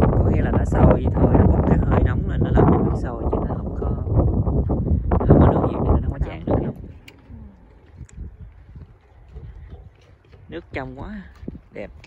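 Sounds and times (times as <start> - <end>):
low rumble: 0.0 - 12.0
footsteps on pebbles: 6.7 - 12.0.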